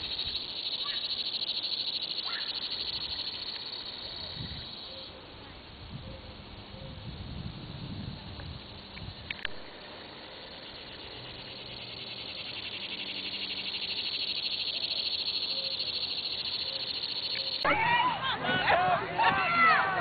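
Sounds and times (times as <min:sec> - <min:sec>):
insects buzzing: 0:00.0 - 0:17.7.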